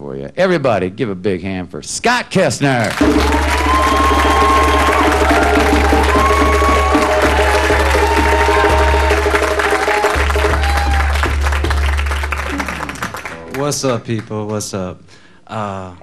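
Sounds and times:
audience applause: 0:02.8 - 0:14.2
congas: 0:03.0 - 0:13.6
bass line: 0:03.0 - 0:13.8.

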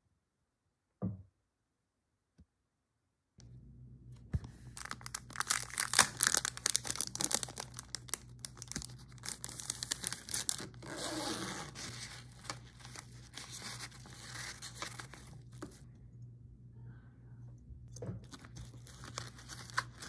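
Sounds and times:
plastic packaging crinkling: 0:04.7 - 0:15.8, 0:18.2 - 0:20.0.

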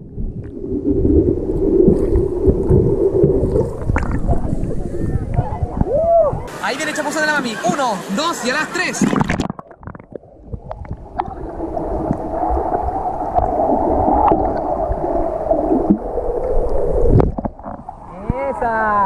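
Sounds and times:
muffled underwater rushing: 0:00.0 - 0:06.6, 0:07.6 - 0:18.6
splash into water: 0:08.9 - 0:09.7.

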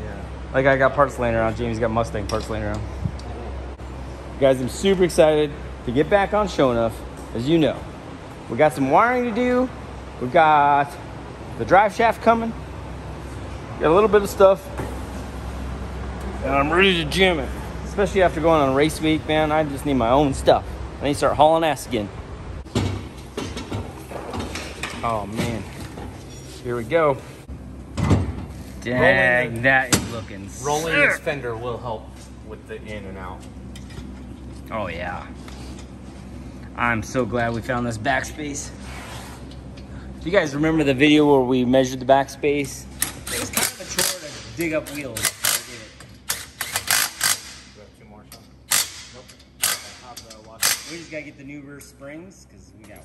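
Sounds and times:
impact wrench hammering: 0:43.0 - 0:47.8, 0:48.7 - 0:51.2.

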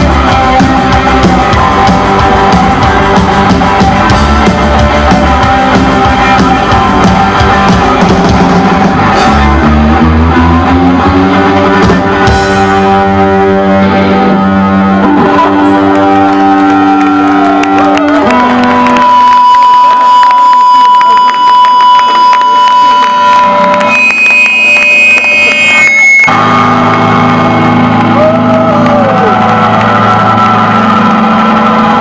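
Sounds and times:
rock band playing: 0:00.0 - 0:32.0
steady high tone: 0:19.4 - 0:28.2.

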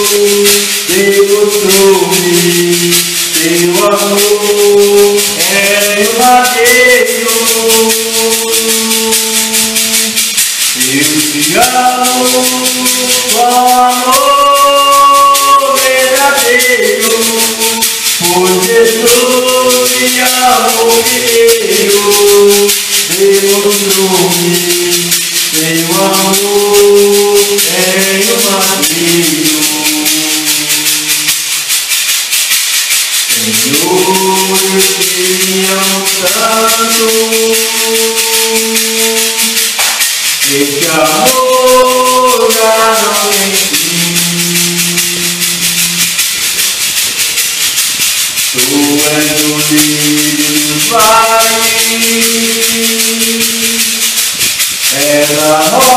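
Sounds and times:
shaker rattling: 0:00.0 - 0:55.9
worship music melody: 0:00.0 - 0:55.9.

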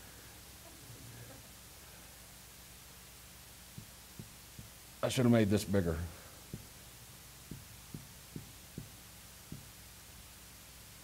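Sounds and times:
faint steady hum: 0:00.0 - 0:11.0
marker tapping on whiteboard: 0:03.8 - 0:04.8, 0:07.5 - 0:09.8.

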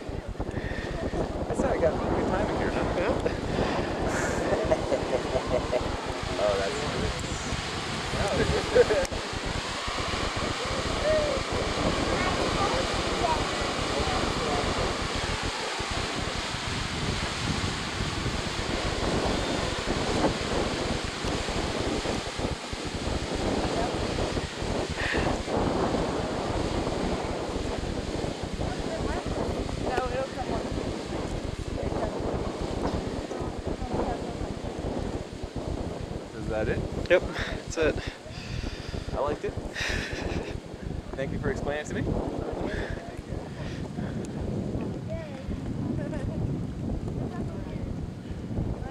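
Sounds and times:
geyser rushing water and steam: 0:00.0 - 0:48.9
wind buffeting microphone: 0:00.0 - 0:48.9.

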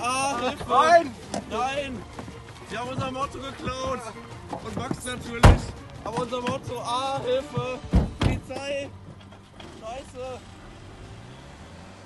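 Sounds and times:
car doors slamming shut: 0:05.4 - 0:05.8, 0:07.6 - 0:08.8.

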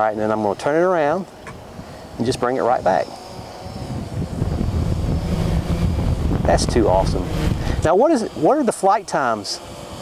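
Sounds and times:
quadcopter motors whining: 0:00.0 - 0:10.0
wind rumble on microphone: 0:01.4 - 0:08.1.

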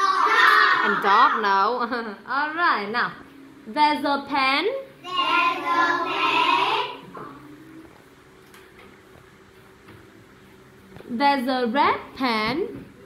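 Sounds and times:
children chanting in unison: 0:00.0 - 0:01.0, 0:05.0 - 0:07.0.

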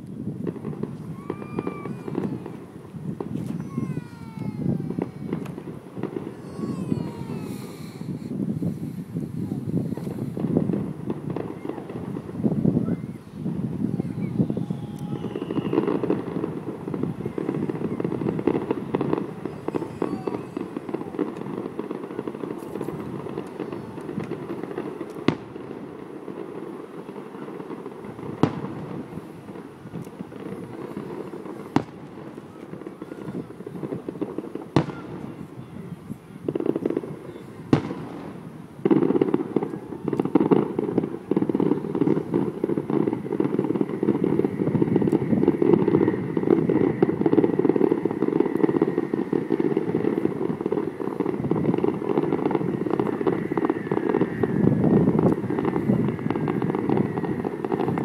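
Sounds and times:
distant fireworks bangs: 0:00.0 - 0:58.0.

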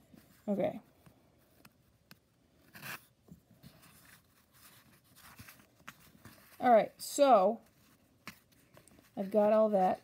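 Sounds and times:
fabric rustling and scratching: 0:02.6 - 0:10.0.

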